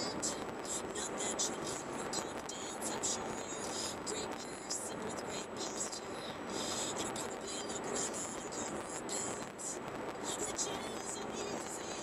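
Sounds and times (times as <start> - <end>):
car road and engine noise: 0.0 - 12.0
faint talk radio voice: 0.0 - 12.0.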